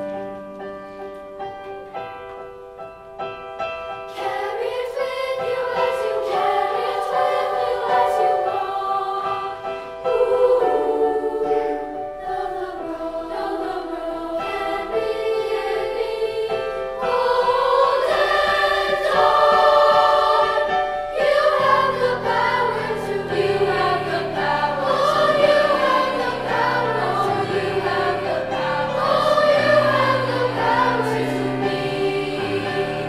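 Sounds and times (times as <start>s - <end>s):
piano accompaniment: 0.0s - 33.0s
girls choir singing: 4.1s - 33.0s.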